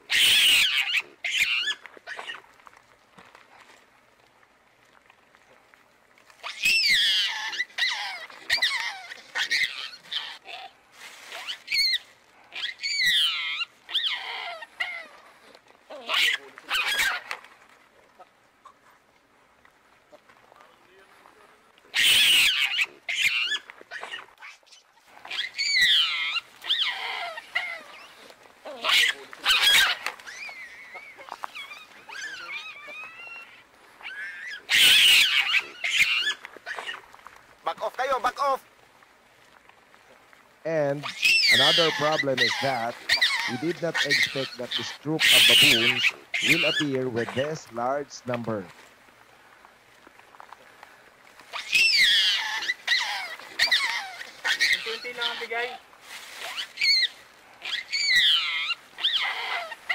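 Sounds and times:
baboons screaming: 0.0 - 2.4, 6.4 - 10.7, 11.3 - 15.2, 15.9 - 17.4, 21.9 - 38.6, 40.9 - 48.0, 51.5 - 55.8, 56.4 - 59.9.

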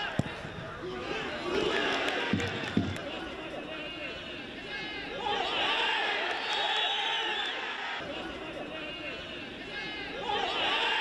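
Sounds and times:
men calling out: 7.2 - 11.0.

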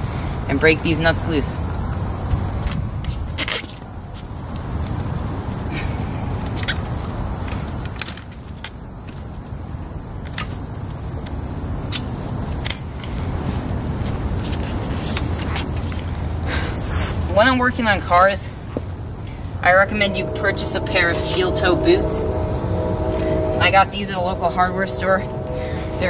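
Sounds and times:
low outdoor rumble: 19.3 - 26.0.

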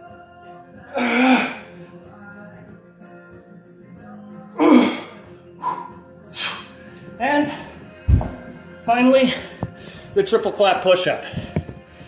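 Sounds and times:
background music: 0.0 - 12.0
man grunting and breathing hard: 0.9 - 1.7.

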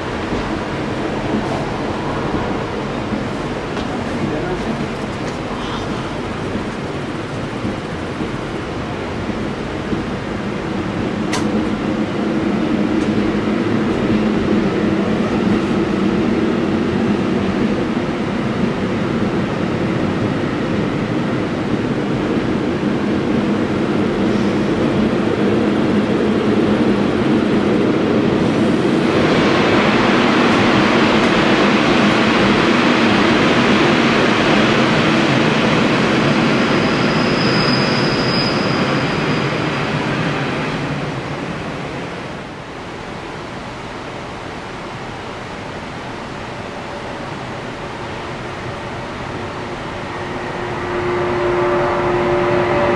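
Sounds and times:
train wheels rumbling on rails: 0.0 - 52.9
high squeal: 36.6 - 39.8.

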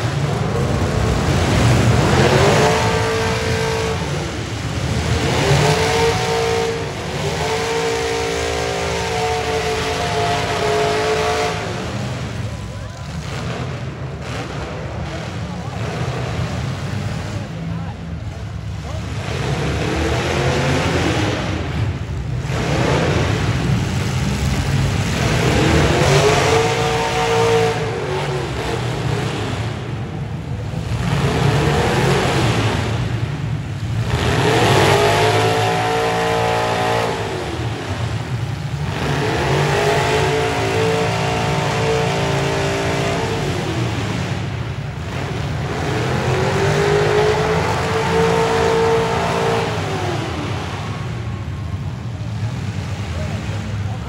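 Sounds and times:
engine revving hard: 0.0 - 54.0
vehicle engines running: 0.0 - 54.0.

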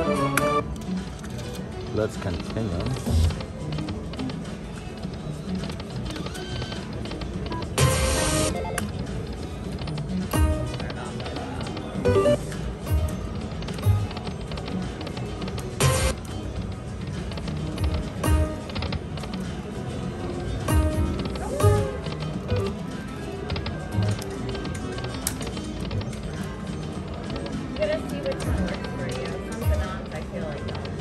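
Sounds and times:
slot machine chimes and jingles: 12.0 - 13.0.

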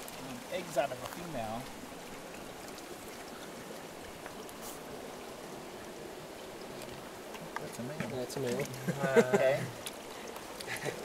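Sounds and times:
running water: 0.0 - 11.0.

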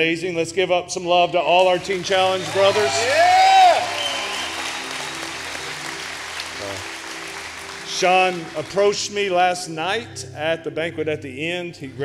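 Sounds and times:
congregation applauding: 1.6 - 9.3.

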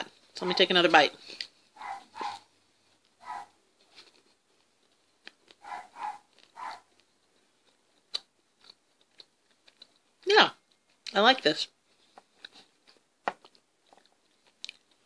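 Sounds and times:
soft chewing: 0.1 - 15.0
dog barking outside: 0.4 - 0.8, 1.7 - 2.5, 3.2 - 3.6, 5.6 - 6.9.

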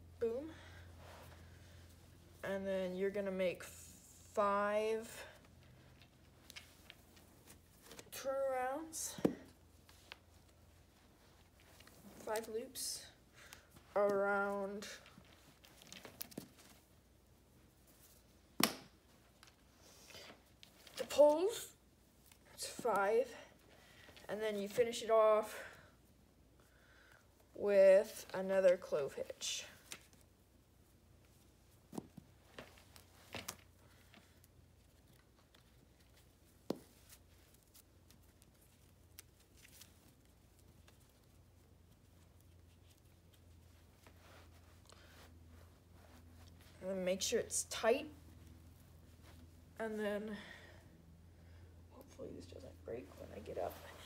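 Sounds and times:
rope rustling on wooden poles: 0.0 - 54.0
rope rustling and clicking: 5.4 - 8.1, 13.4 - 17.1, 29.7 - 30.3, 31.2 - 46.8.

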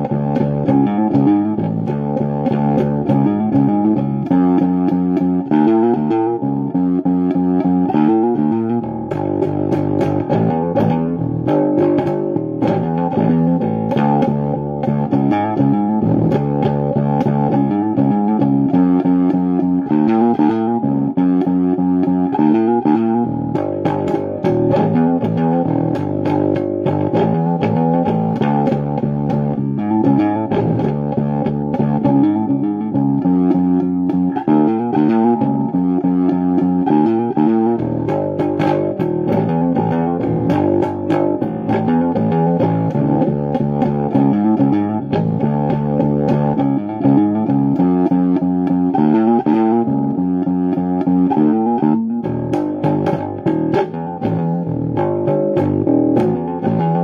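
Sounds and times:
fretless electric bass riff: 0.0 - 57.0.

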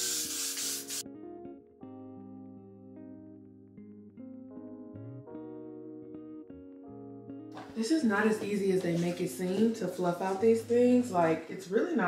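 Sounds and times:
aerosol hairspray hissing: 0.0 - 1.0
plucked guitar music: 1.0 - 11.4.

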